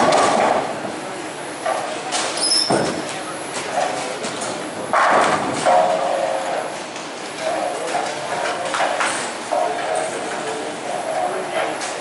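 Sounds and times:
bowling lane noise: 0:00.0 - 0:09.8
background chatter: 0:00.4 - 0:12.0.

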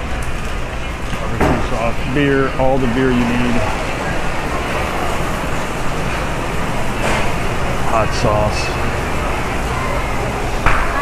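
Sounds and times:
store interior background noise: 0:00.0 - 0:11.0.

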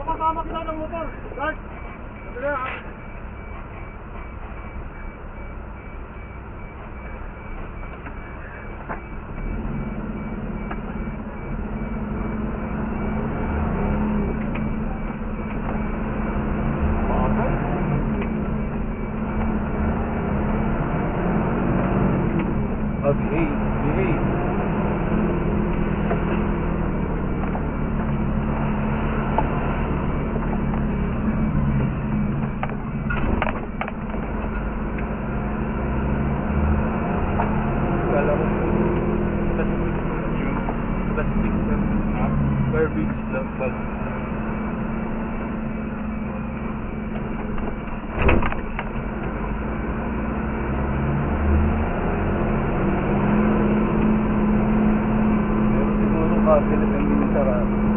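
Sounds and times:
fire engine diesel engine: 0:00.0 - 0:57.9.

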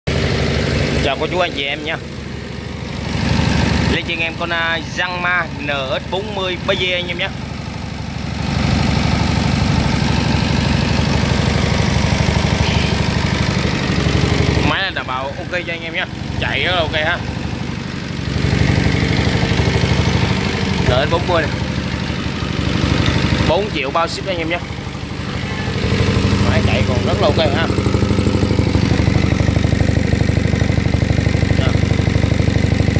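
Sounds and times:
diesel engine idling: 0:00.1 - 0:32.9.

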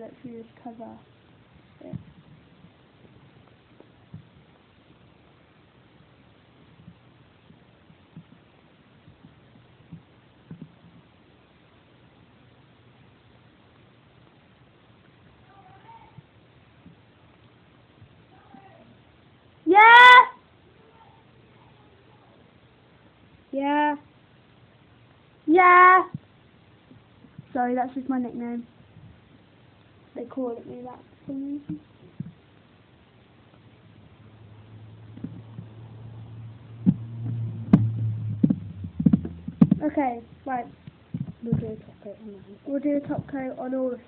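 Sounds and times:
low steady hum: 0:00.0 - 0:44.0
person shouting: 0:19.7 - 0:20.4
sharp knocks: 0:36.8 - 0:39.9.

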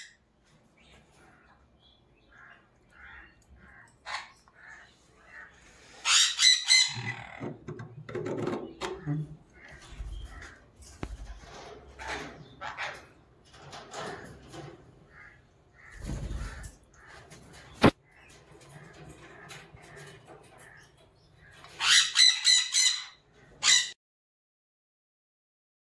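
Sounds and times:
parrot chicks begging squawks: 0:02.2 - 0:07.6, 0:08.7 - 0:13.2, 0:14.1 - 0:24.0
parrot squawking: 0:02.4 - 0:07.5, 0:12.0 - 0:13.2, 0:21.6 - 0:24.0.

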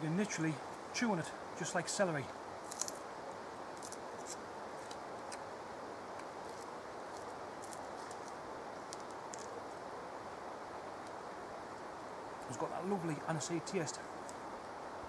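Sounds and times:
steady outdoor hiss: 0:00.0 - 0:15.0
plant stem being chewed: 0:02.7 - 0:03.0.

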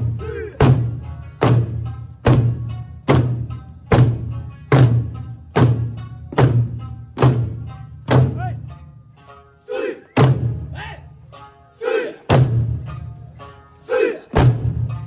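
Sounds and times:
voices shouting: 0:00.2 - 0:00.6, 0:09.6 - 0:10.2, 0:11.7 - 0:12.3, 0:13.8 - 0:14.4
large barrel drums striking: 0:00.6 - 0:08.6, 0:10.2 - 0:10.7, 0:12.3 - 0:12.9, 0:14.4 - 0:15.0.

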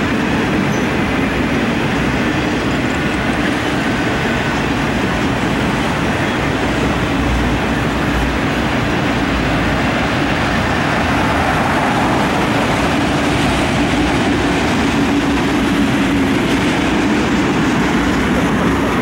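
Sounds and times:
steel wheels rolling on rails: 0:00.0 - 0:19.0.

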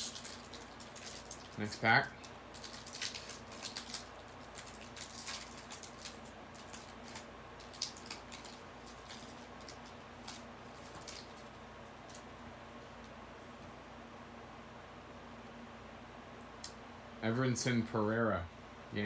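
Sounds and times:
wrapper being torn open: 0:00.0 - 0:01.8, 0:02.5 - 0:12.2.

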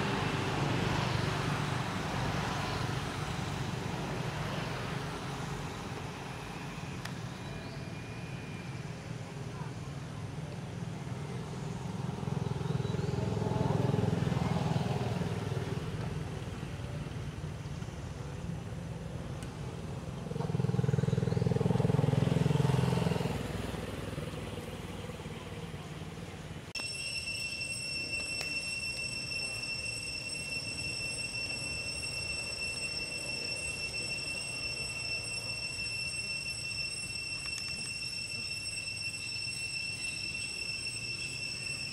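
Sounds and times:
vehicle engine passing: 0:11.0 - 0:17.6, 0:19.7 - 0:26.6
high-pitched insect drone: 0:26.8 - 0:41.9.

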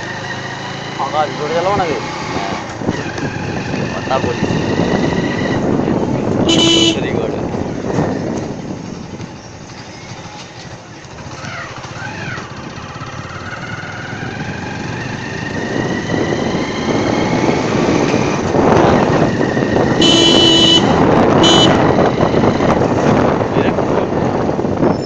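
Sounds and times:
car horn honking: 0:06.4 - 0:07.1, 0:20.0 - 0:21.9
vehicle engine speeding up: 0:12.0 - 0:23.5.

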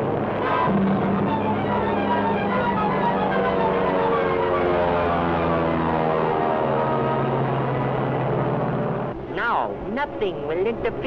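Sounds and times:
propeller engines droning: 0:00.0 - 0:11.0.

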